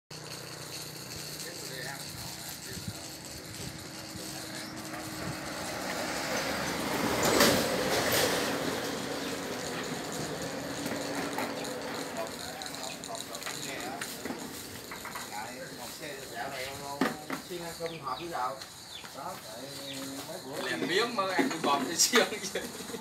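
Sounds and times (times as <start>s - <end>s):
loud passing noise: 0.4s - 17.4s.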